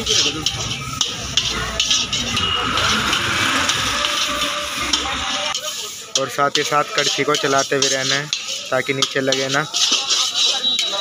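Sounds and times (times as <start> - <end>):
food sizzling in a pan: 0.0 - 11.0
metal spoon scraping a pan: 0.0 - 11.0.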